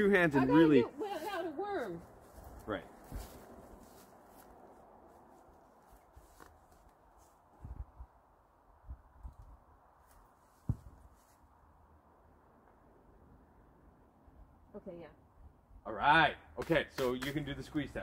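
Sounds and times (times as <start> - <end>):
faint outdoor background: 0.0 - 18.0.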